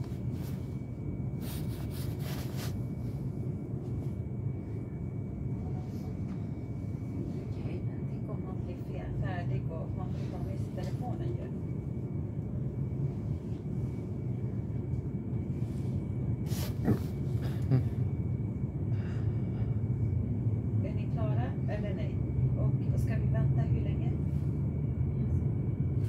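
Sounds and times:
train rumble inside carriage: 0.0 - 26.0.

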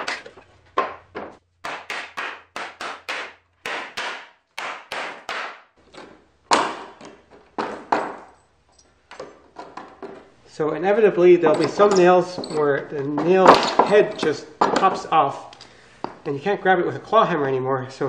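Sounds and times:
hammer knocking on wood: 0.8 - 5.6.

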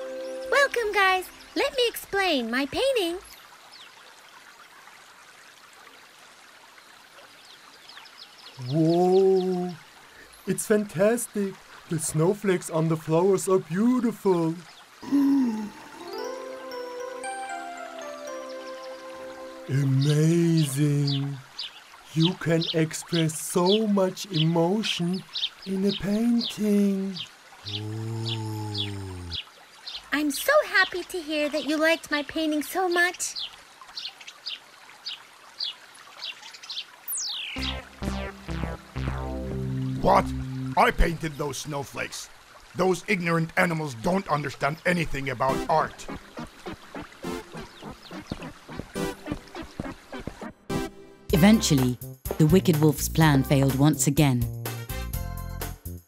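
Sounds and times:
running stream: 0.0 - 51.8
faint bird chirp: 25.2 - 30.1, 32.9 - 38.0.

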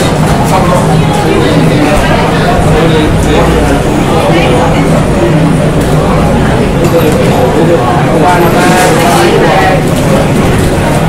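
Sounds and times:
loud steady kitchen roar: 0.0 - 11.0
voices talking: 0.0 - 11.0.

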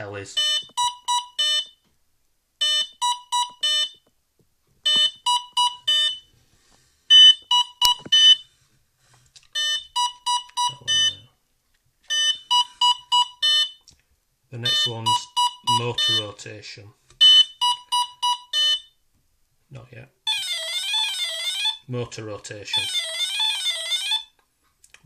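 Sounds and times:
short high-pitched beeps: 0.4 - 1.8, 2.6 - 4.0.

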